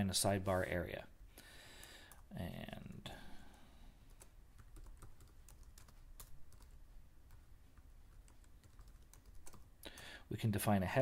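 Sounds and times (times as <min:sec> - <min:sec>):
faint keyboard typing: 0:01.8 - 0:10.3.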